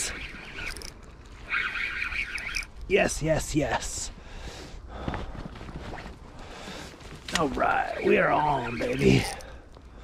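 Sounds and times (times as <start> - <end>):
fishing reel whirring: 0.0 - 2.7, 9.1 - 9.5.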